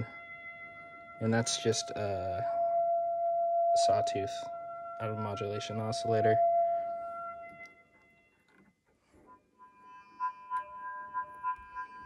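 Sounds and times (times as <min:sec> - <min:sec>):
pulsing synthesizer tone: 0:00.0 - 0:07.9, 0:09.5 - 0:12.0.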